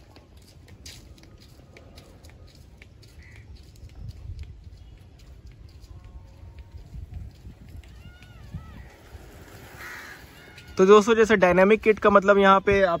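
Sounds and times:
distant bird calls: 2.5 - 4.0, 7.9 - 11.0.

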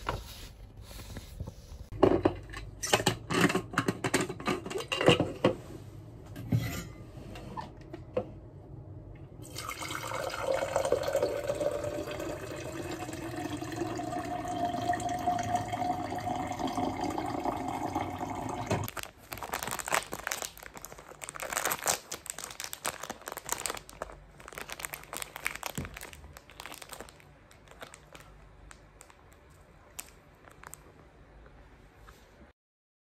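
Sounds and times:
water running into plastic cup: 9.4 - 18.9
plastic wrapper crinkling: 18.9 - 31.1.

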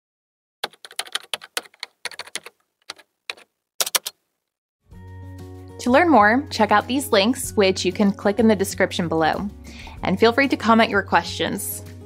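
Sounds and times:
keyboard typing: 0.6 - 4.2.

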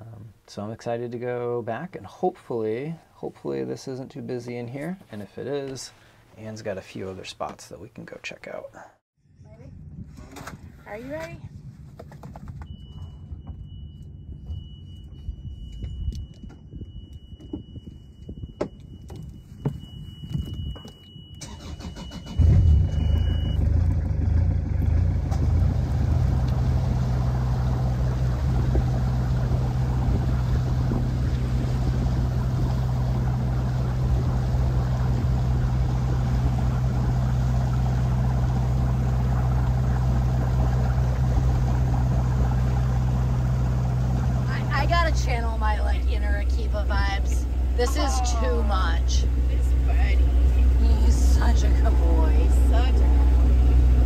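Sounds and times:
high warning beep: 12.7 - 23.6
boat engine running: 22.4 - 54.0.

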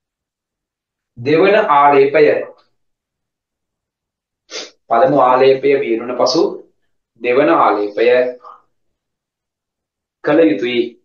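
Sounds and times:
man speaking: 1.2 - 2.7, 4.5 - 8.7, 10.2 - 11.0
man drawing sharp breath: 4.5 - 4.8.

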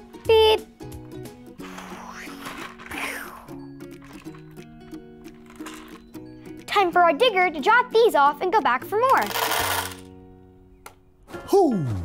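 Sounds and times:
gentle slow background music: 0.0 - 12.0.

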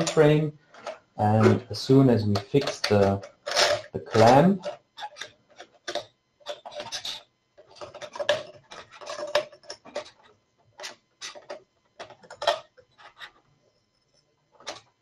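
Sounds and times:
metal clicks and scrapes: 0.0 - 13.5.

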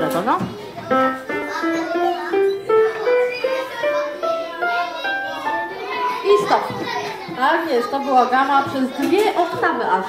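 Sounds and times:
electronic keyboard scale: 0.9 - 6.1.

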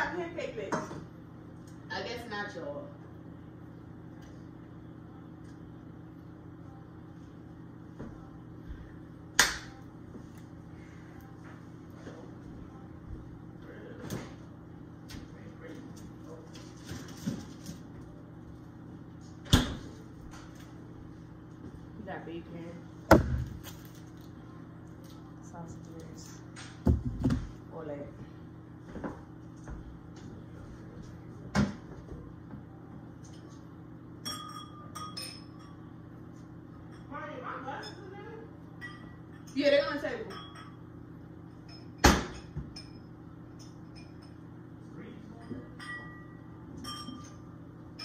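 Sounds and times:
low appliance hum: 0.0 - 48.0.

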